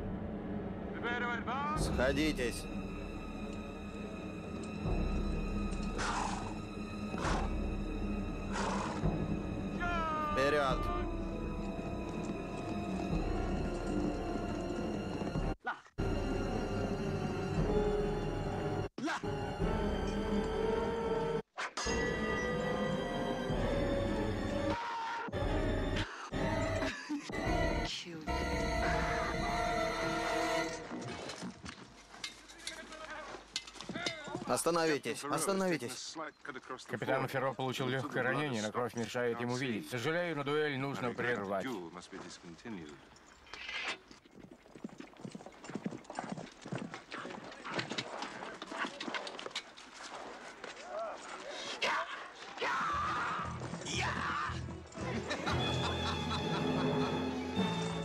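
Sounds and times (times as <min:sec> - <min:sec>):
tense film score drone: 0:00.0 - 0:10.2, 0:22.1 - 0:31.0
horse breathing loudly: 0:05.9 - 0:07.6, 0:08.5 - 0:09.2
galloping horse knocks and clinks: 0:30.8 - 0:34.6, 0:42.2 - 0:51.5.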